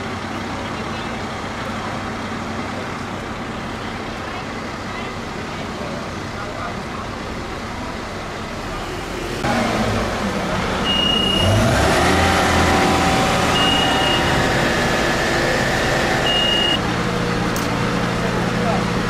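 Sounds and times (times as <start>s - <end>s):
diesel engines rumbling: 0.0s - 19.0s
high warning beep: 10.8s - 11.7s, 13.5s - 14.6s, 16.2s - 16.8s.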